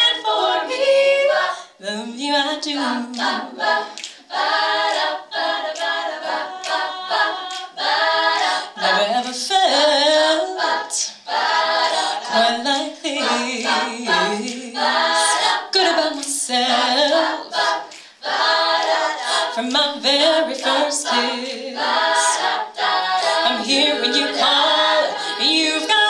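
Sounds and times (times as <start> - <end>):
women singing in harmony: 0.0 - 26.0.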